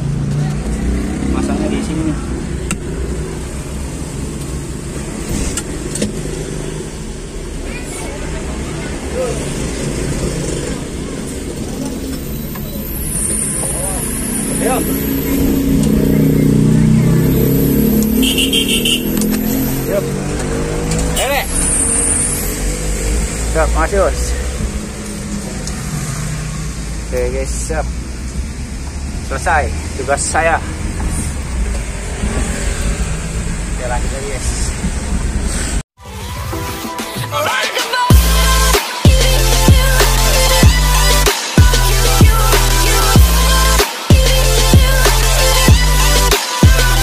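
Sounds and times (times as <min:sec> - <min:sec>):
vehicle engine and road noise: 0:00.0 - 0:36.6, 0:37.4 - 0:47.0.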